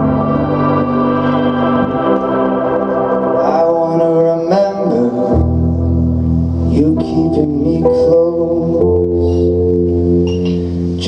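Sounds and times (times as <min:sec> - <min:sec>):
bass line: 0:00.0 - 0:11.0
organ keyboard chords: 0:00.0 - 0:11.0.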